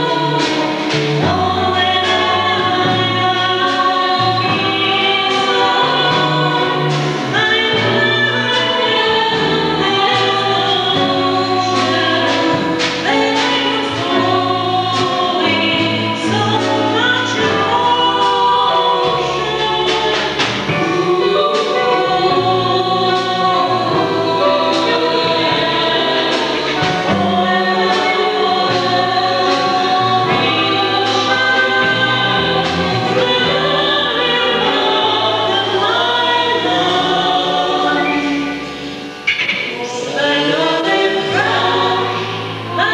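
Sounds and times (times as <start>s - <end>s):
double bass held notes: 0.0s - 42.9s
women singing in harmony: 0.0s - 42.9s.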